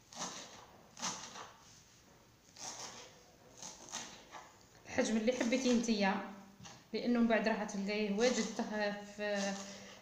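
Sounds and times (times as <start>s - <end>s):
knife cutting on wooden board: 0.0s - 1.6s, 2.6s - 4.5s.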